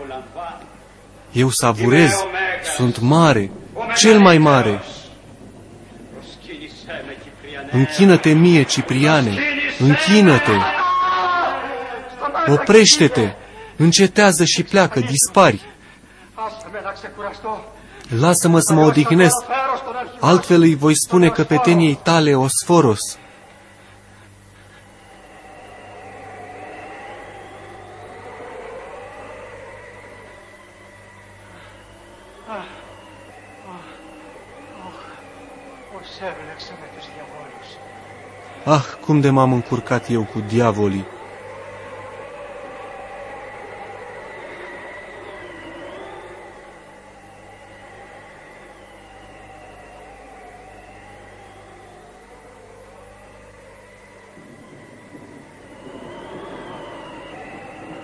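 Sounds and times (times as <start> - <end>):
eerie wavering whine: 0.0 - 58.0
steady low hum: 0.0 - 58.0.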